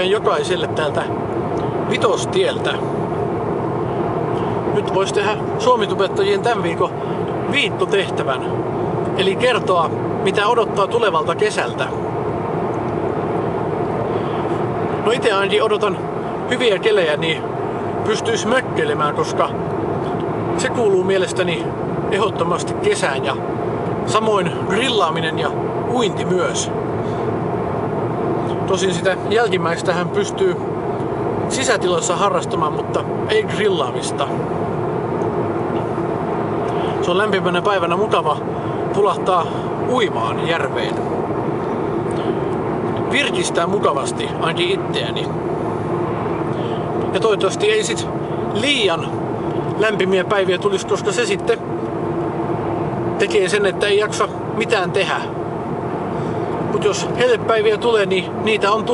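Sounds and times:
car cabin road drone: 0.0s - 58.9s
low engine hum: 0.0s - 58.9s.

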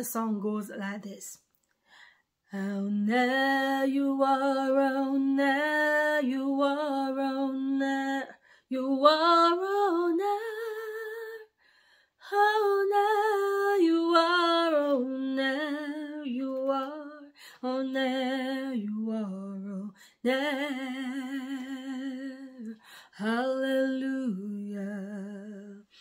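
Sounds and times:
woman singing unaccompanied: 2.5s - 11.5s, 12.2s - 26.0s.

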